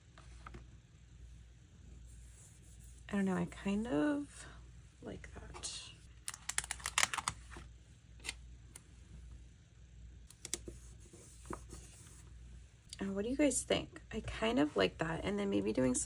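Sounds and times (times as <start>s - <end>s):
paper stickers crackling and tapping: 6.2s - 7.6s.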